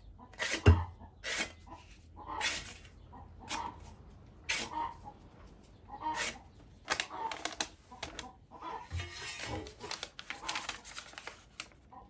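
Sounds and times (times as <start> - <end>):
sanding pad rasping on steel blade: 0.4 - 1.5, 6.2 - 6.4.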